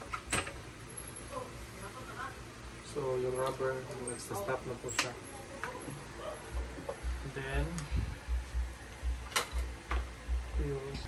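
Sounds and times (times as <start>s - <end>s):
low regular pulsing: 4.1s - 11.0s.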